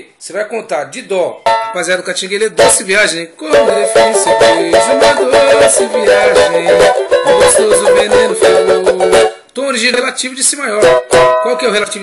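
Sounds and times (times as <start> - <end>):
cavaquinho strumming: 1.5 - 9.5, 10.7 - 12.0.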